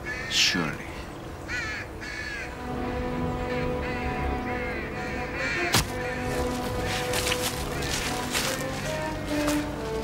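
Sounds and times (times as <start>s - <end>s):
crows cawing: 0.0s - 9.6s
low musical drone: 0.0s - 10.0s.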